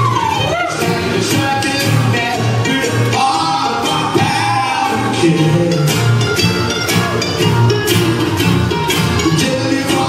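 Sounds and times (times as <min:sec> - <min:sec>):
strummed acoustic guitars: 0:00.0 - 0:10.0.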